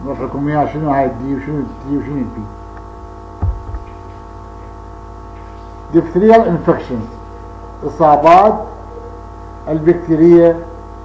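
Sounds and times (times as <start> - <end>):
electrical mains hum: 0.0 - 11.0
low thump: 3.4 - 4.0.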